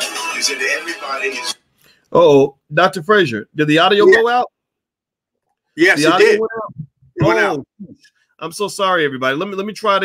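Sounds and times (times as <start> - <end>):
background music: 0.0 - 1.7
person speaking: 2.1 - 4.5, 5.8 - 8.1.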